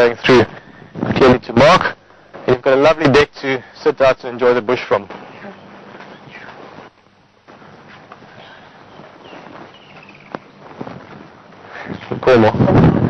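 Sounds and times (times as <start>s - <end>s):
quiet outdoor background noise: 0.0s - 13.0s.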